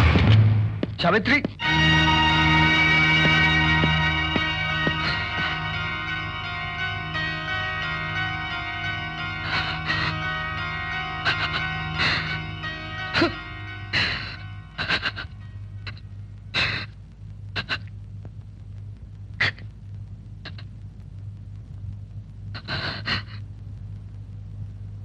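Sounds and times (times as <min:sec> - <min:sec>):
mournful film score drone: 0:00.0 - 0:21.6
man sobbing: 0:09.4 - 0:10.4, 0:11.2 - 0:16.0.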